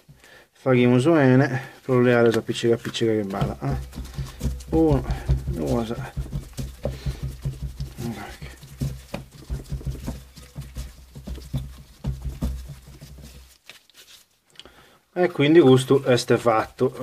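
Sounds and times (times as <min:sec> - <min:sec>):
handling clicks and taps: 0:02.1 - 0:08.0.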